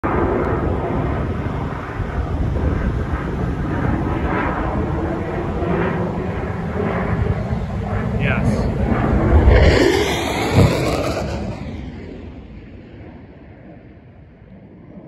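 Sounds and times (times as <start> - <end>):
jet engines rumbling: 0.1 - 14.5.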